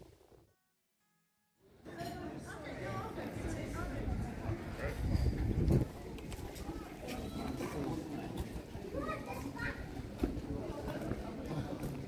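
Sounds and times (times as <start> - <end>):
people and children talking: 1.9 - 12.0.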